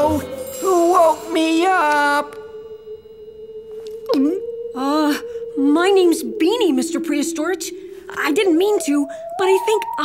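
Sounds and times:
faint high tones: 0.0 - 10.0
steady pure tone drone: 0.0 - 10.0
person's voice: 4.1 - 10.0.

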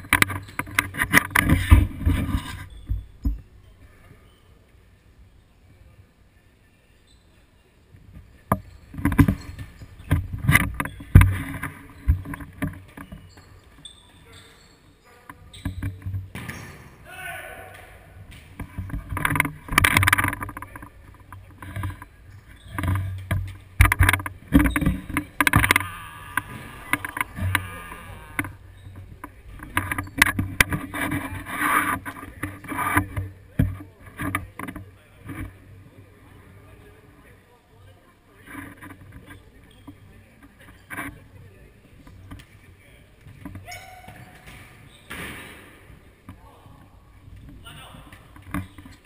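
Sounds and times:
players calling out: 24.6 - 29.0.

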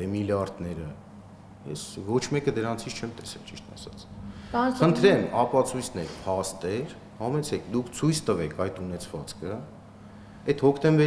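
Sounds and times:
man speaking: 1.6 - 4.1, 4.8 - 9.7, 10.5 - 11.0.

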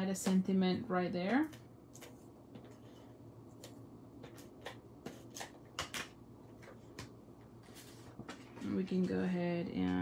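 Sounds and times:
paper rustling and tapping: 3.6 - 10.0.

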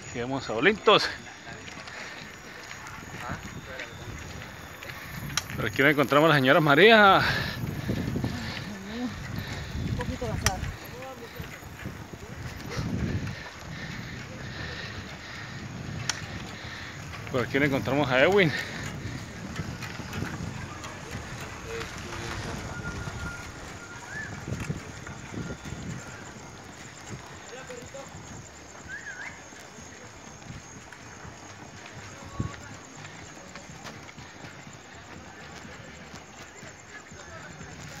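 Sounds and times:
faint voices of riders: 0.0 - 38.0
road and wind noise: 0.0 - 38.0.

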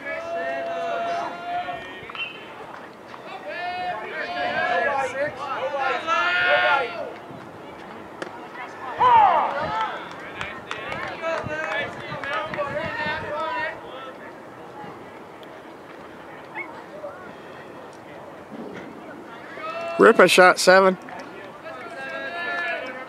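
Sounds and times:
shouted calls and talk: 0.0 - 23.0.

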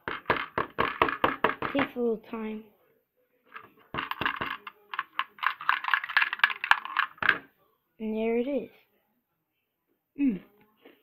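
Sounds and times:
plastic bricks clicking and rattling: 3.6 - 7.5.

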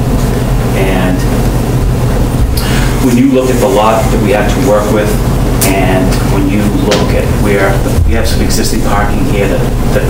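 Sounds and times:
low room hum and rumble: 0.0 - 10.0.

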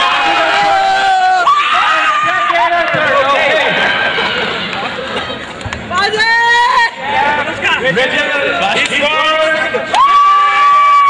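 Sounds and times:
crowd babble: 2.0 - 10.2.

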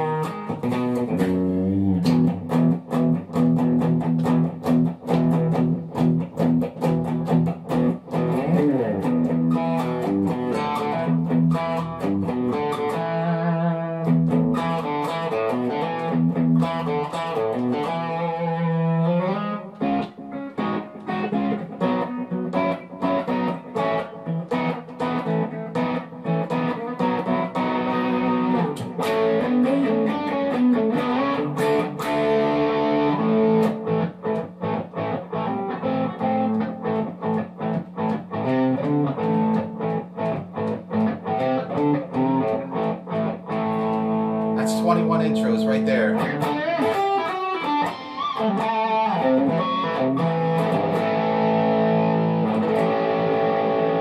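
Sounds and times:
solo electric guitar riffs: 0.0 - 54.0.

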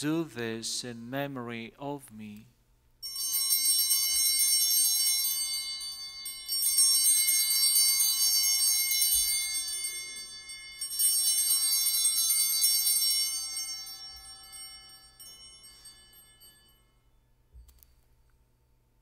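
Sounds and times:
altar bells jingling: 3.0 - 18.0.

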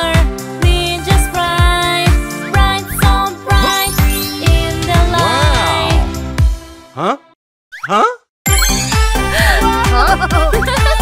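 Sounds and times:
upbeat children's song: 0.0 - 6.2.

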